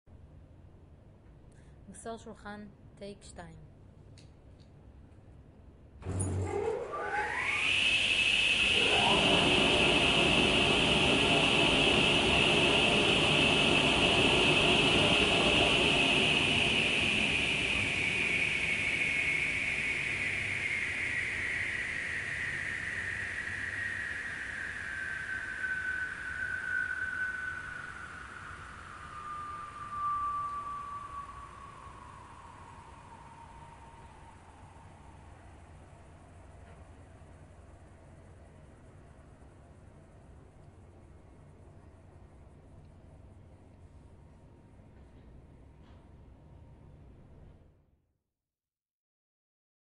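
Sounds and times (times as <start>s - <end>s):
table saw whine: 6.0s - 37.5s.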